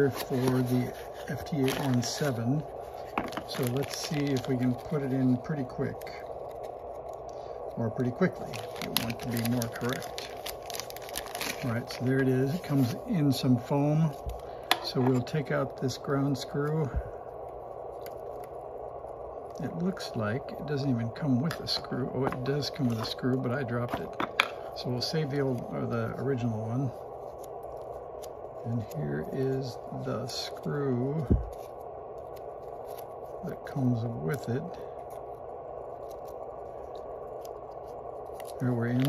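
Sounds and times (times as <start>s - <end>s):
room hum: 0.0s - 39.0s.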